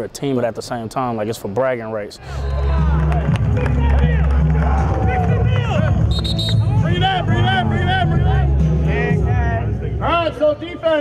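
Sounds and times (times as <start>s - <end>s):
background music: 2.2s - 11.0s
group of players: 2.3s - 10.8s
man shouting a chant: 3.7s - 11.0s.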